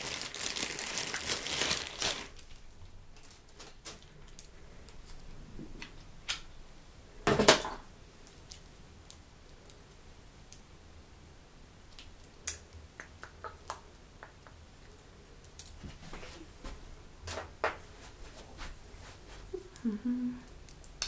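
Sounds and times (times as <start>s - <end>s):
plastic bag crinkling: 0.0s - 4.4s.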